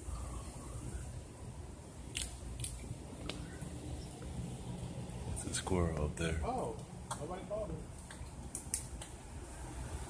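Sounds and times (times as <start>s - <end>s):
squirrels cracking acorns: 2.1s - 3.5s.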